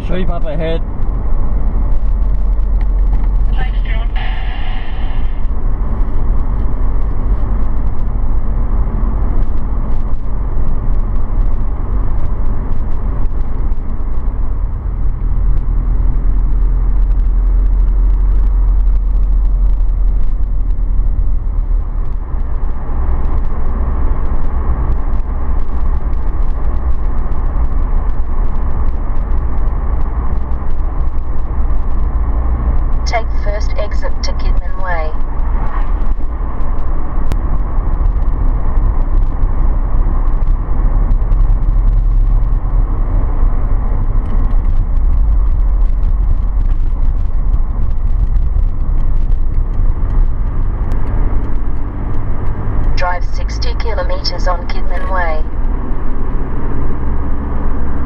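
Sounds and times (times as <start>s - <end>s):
car driving at highway speed: 0.0s - 58.0s.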